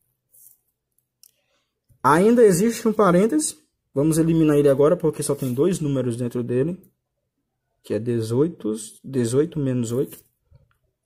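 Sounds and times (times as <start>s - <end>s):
pen scratching on paper: 5.2s - 5.9s.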